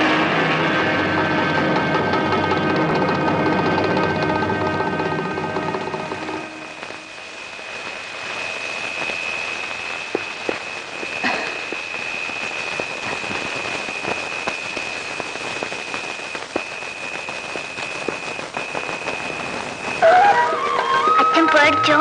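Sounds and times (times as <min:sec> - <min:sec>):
high-pitched whine: 0:00.0 - 0:22.0
rain-like hiss: 0:05.2 - 0:22.0.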